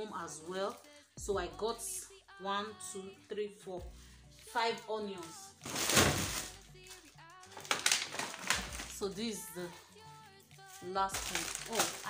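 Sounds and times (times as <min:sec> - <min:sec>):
plastic bags rustling: 0:04.6 - 0:12.0.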